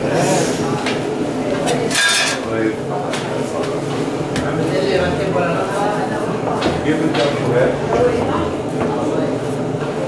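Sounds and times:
people talking: 0.0s - 10.0s
metal kitchenware clattering: 1.9s - 2.5s.

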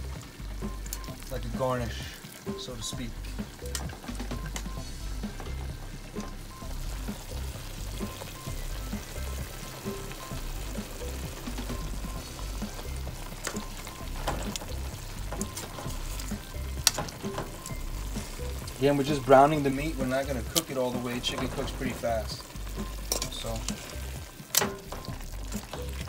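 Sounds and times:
chicken sizzling in oil: 0.0s - 26.0s
tongs clicking against pot: 23.1s - 23.9s.

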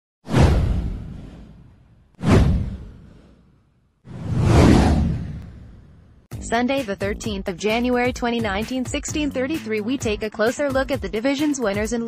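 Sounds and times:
deep whoosh sound effects: 0.2s - 3.5s, 4.1s - 6.3s.

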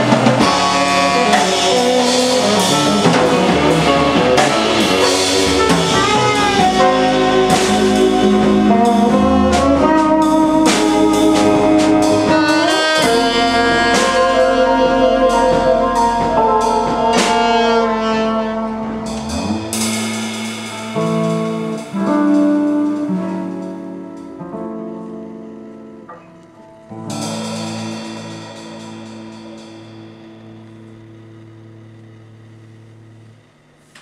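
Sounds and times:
busy drumming and cymbals: 0.0s - 24.5s, 26.8s - 32.5s
jazz band playing: 0.0s - 33.4s.

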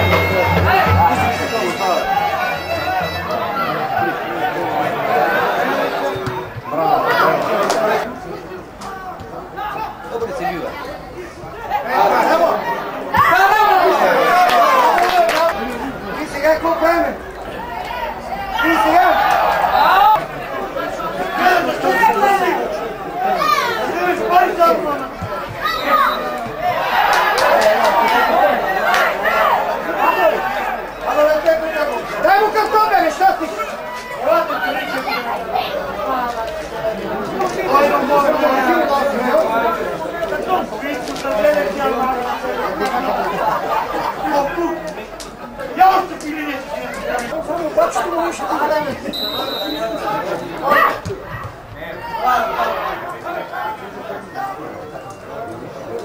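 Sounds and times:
spectators shouting: 0.0s - 8.1s, 8.9s - 40.8s, 46.8s - 54.9s
people talking over one another: 0.0s - 56.0s.

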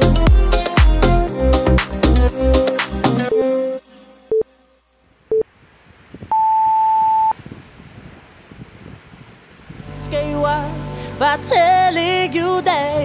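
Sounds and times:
long high beep: 6.3s - 7.4s
short low beeps: 6.3s - 7.4s.

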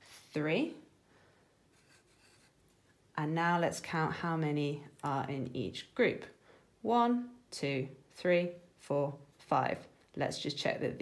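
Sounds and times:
pencil scratching on paper: 1.7s - 2.7s.

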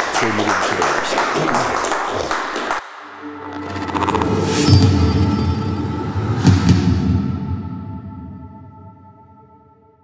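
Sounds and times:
audience applause: 0.0s - 2.8s.

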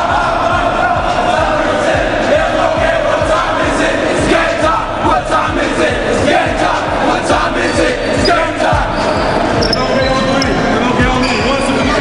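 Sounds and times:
players' voices echoing: 6.2s - 12.0s
short high squeaks: 9.0s - 11.5s.

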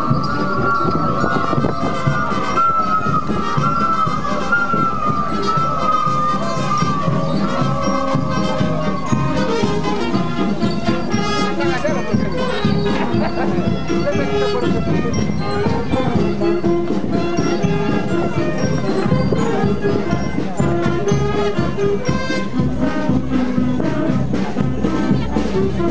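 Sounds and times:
crowd voices: 0.0s - 25.9s
high wind-instrument melody: 0.0s - 25.9s
lower accompanying notes: 0.0s - 25.9s.

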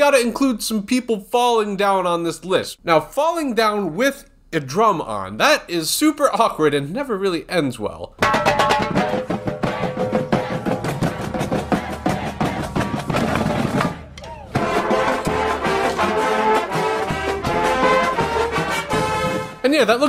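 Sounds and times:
snare and bass drums: 8.2s - 19.6s
brass horns holding chords: 14.5s - 19.7s.

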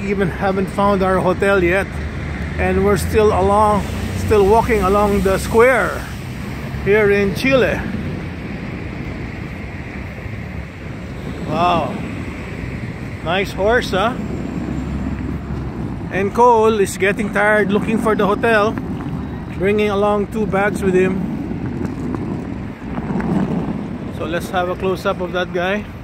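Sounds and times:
city background rumble: 0.0s - 26.0s
wind buffeting microphone: 0.0s - 26.0s.

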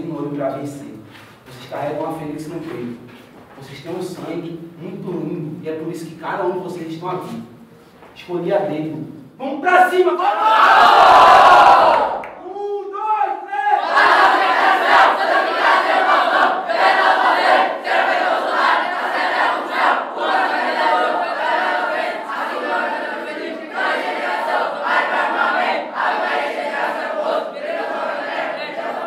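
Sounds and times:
boys chanting and shouting: 12.4s - 26.1s.

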